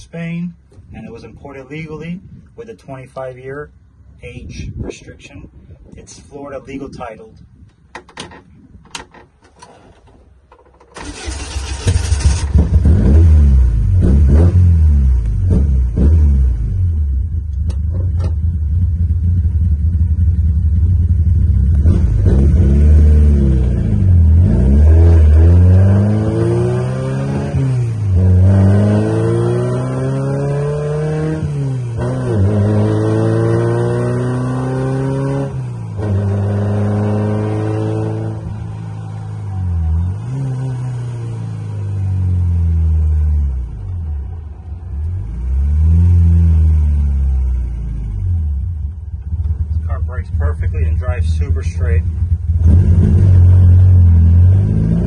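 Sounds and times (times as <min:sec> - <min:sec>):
car engine accelerating through gears: 0:11.0 - 0:49.9, 0:52.0 - 0:55.0.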